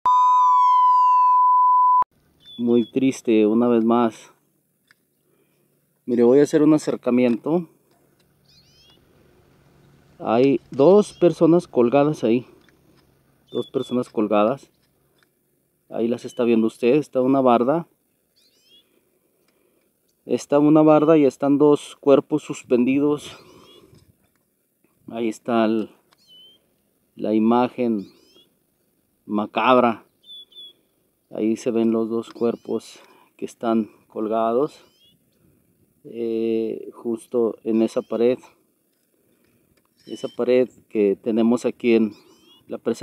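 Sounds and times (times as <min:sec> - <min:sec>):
falling tone: 0:00.1 - 0:02.0
high electronic beep: 0:00.1 - 0:02.6
high falling bird chirps: 0:02.3 - 0:03.2, 0:08.3 - 0:09.1, 0:10.9 - 0:11.5, 0:12.6 - 0:14.1, 0:18.2 - 0:19.0, 0:23.3 - 0:23.9, 0:26.2 - 0:26.7, 0:27.9 - 0:29.0, 0:30.0 - 0:31.4, 0:32.3 - 0:32.9, 0:34.8 - 0:35.4, 0:37.5 - 0:38.3, 0:39.9 - 0:40.5, 0:42.1 - 0:42.7.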